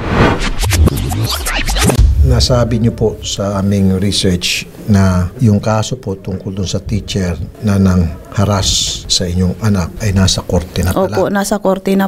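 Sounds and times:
record scratching: 0.0 - 3.0
deep bass: 0.0 - 3.5.

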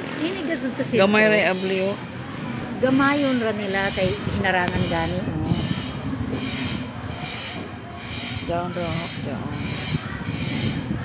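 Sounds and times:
rough rumbling with pulsing: 0.0 - 11.0.

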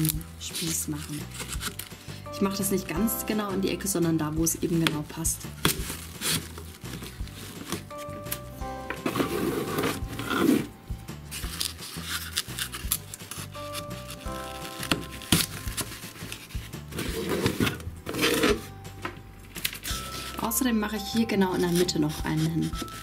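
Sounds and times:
background music: 0.0 - 23.0
skewers scraping through foam: 9.0 - 18.7.

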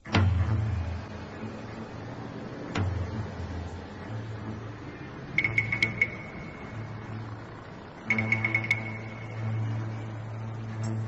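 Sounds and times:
low drone: 0.0 - 11.0.

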